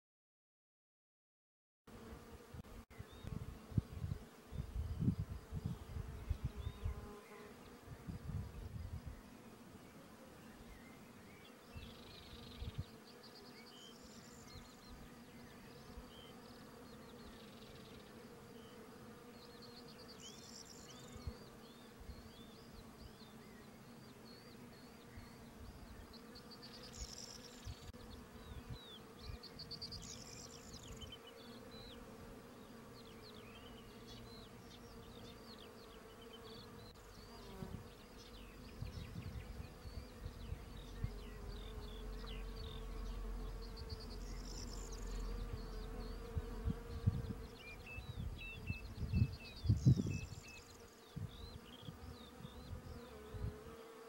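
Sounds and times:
wasps buzzing: 0:26.2 - 0:48.6.

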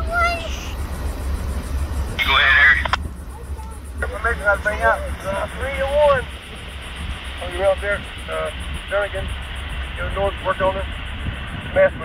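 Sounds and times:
low rumble: 0:00.0 - 0:12.0
radio click: 0:02.2 - 0:03.0
radio squelch and garbled transmission: 0:02.2 - 0:12.0.

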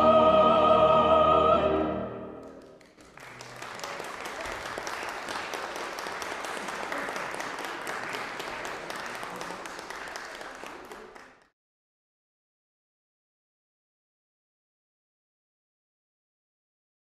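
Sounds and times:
congregation clapping: 0:02.4 - 0:11.5.

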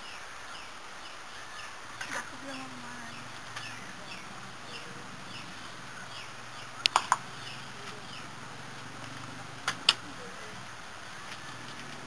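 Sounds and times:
faint background hiss: 0:00.0 - 0:12.0
small birds chirping: 0:00.0 - 0:12.0.

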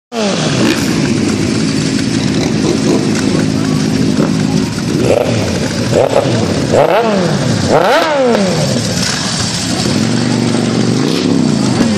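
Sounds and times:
motorcycle engine revving: 0:00.1 - 0:11.9.

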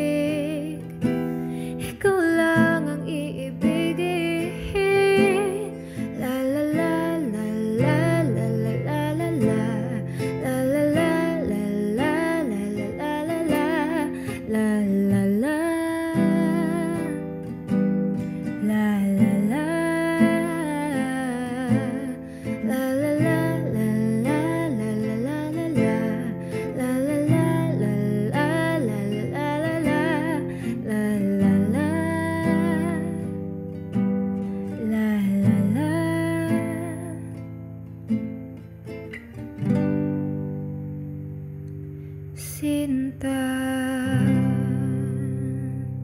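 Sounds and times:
woman singing a ballad: 0:00.0 - 0:37.7, 0:42.3 - 0:46.0
acoustic guitar: 0:00.0 - 0:46.0.

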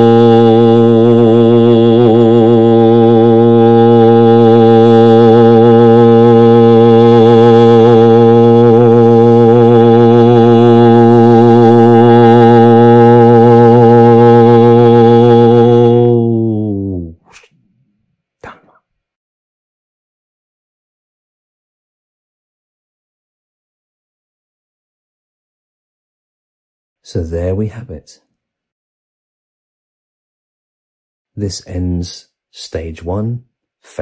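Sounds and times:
low voice toning drone: 0:00.0 - 0:17.4.

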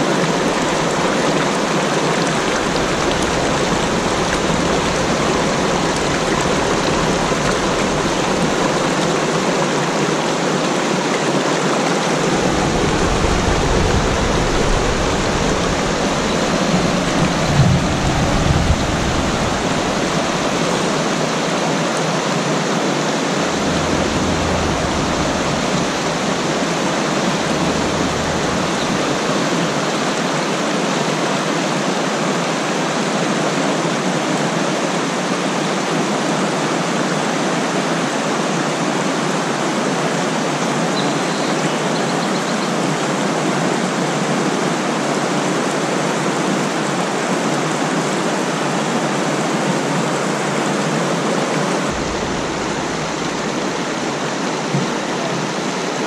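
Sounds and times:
water rushing over boulders: 0:00.0 - 0:56.0.

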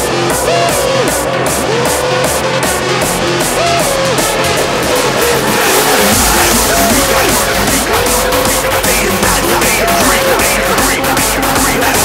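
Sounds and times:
heavy bass and kick drum: 0:00.0 - 0:12.0
synth lead melody: 0:00.0 - 0:12.0.

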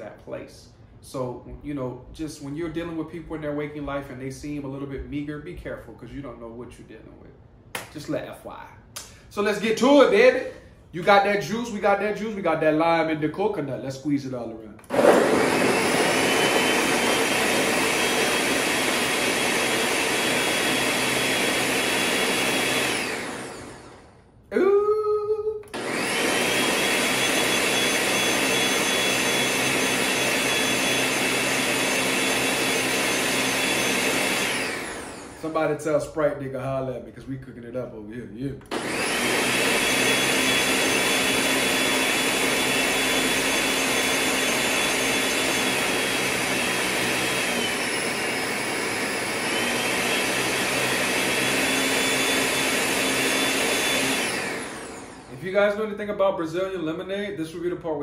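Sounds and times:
countertop blender running: 0:14.8 - 0:24.2, 0:25.6 - 0:35.7, 0:38.7 - 0:55.7.

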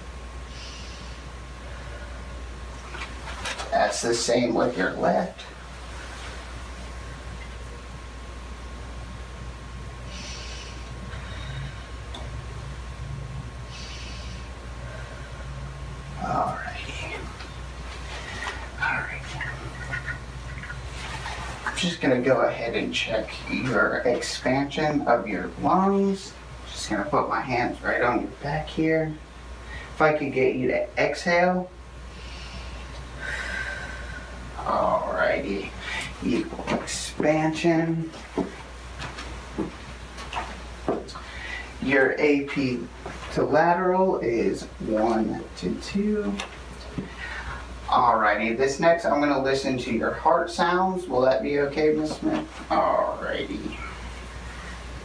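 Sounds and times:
steady low hum: 0:00.0 - 0:55.0
person breathing deeply: 0:00.5 - 0:02.4, 0:10.1 - 0:12.0, 0:13.6 - 0:15.7, 0:32.1 - 0:34.5, 0:41.2 - 0:41.8, 0:47.0 - 0:47.8.

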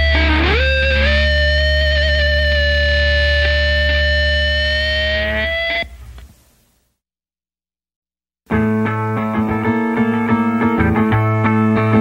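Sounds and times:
distorted electric guitar chord: 0:00.0 - 0:05.9
bass guitar: 0:00.0 - 0:06.0, 0:08.5 - 0:12.0
high feedback tone: 0:00.0 - 0:06.0.

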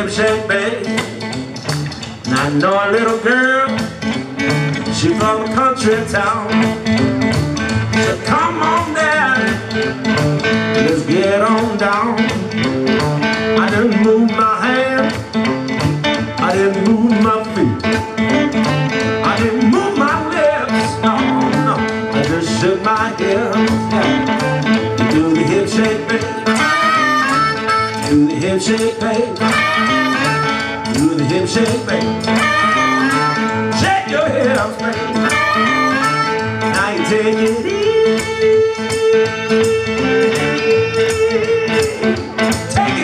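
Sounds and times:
electric blues band playing: 0:00.0 - 0:43.0
harmonica: 0:20.4 - 0:42.6.

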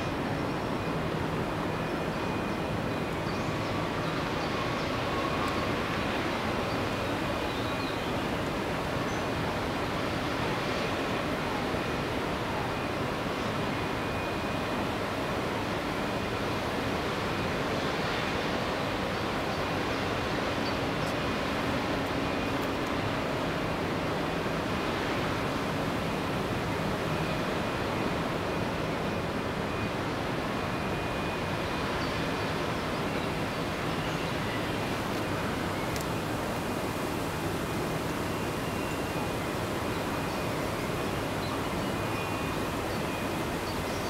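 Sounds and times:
faint high whine: 0:00.0 - 0:44.0.

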